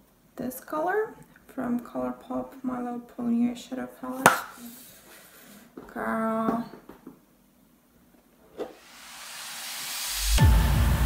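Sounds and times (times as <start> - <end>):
rising hiss: 8.8 - 11.0
electronic background music: 10.0 - 11.0.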